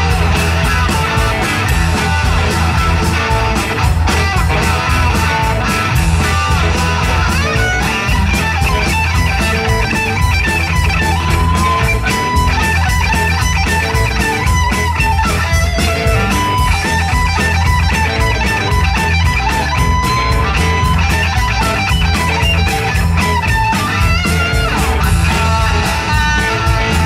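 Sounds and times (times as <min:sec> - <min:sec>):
bass guitar: 0:00.0 - 0:27.0
drums keeping a steady beat: 0:00.0 - 0:27.0
electric guitars: 0:00.0 - 0:27.0.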